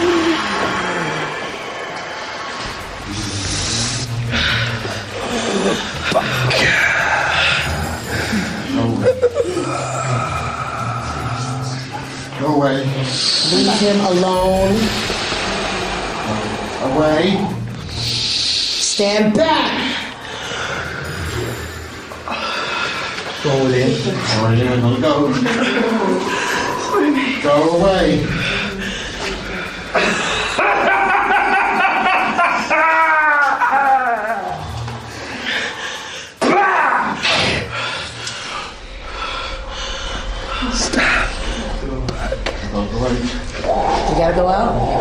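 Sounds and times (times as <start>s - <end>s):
drone of sustained tones: 0.0s - 45.0s.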